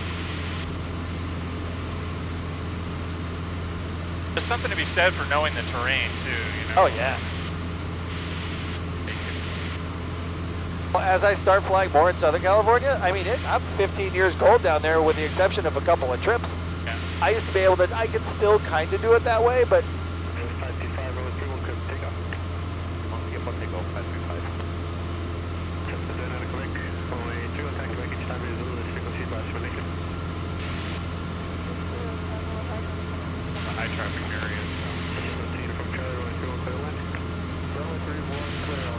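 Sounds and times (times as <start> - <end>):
aircraft engine and propeller droning: 0.0 - 38.9.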